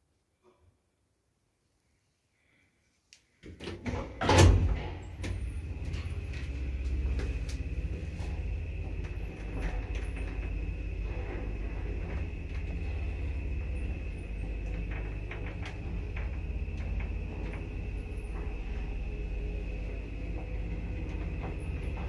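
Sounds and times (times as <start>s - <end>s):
elevator low rumble: 3.6s - 22.0s
thin high whine: 5.0s - 22.0s.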